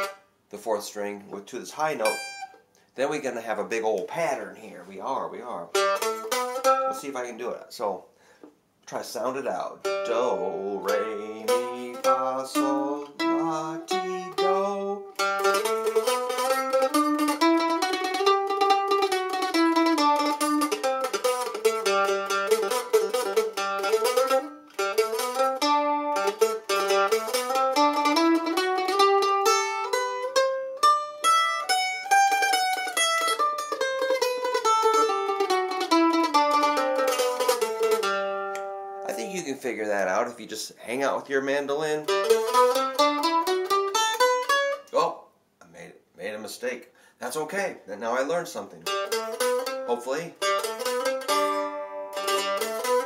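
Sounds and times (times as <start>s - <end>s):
mandolin playing scale: 0.0s - 8.0s, 8.9s - 45.2s, 47.7s - 53.0s.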